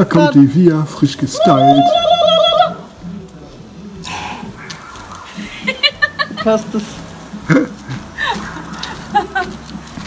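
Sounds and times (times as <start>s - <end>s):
outdoor background: 0.0s - 10.0s.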